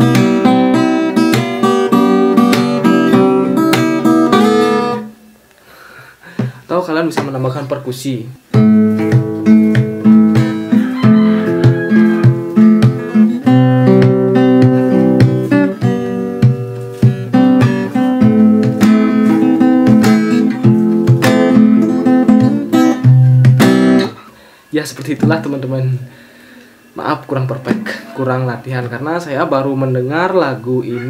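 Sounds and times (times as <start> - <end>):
percussive guitar hits: 0.0 - 5.0, 8.6 - 24.2
fingerstyle acoustic guitar: 0.0 - 5.3, 8.5 - 26.0, 27.2 - 29.0.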